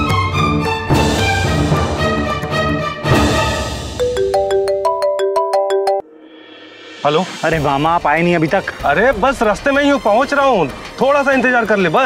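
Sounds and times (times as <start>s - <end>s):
marimba-like phone ringtone: 4.0s - 6.0s.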